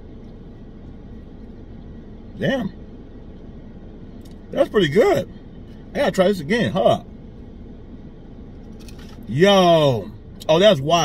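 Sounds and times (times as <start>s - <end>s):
car cabin background noise: 0.0s - 11.0s.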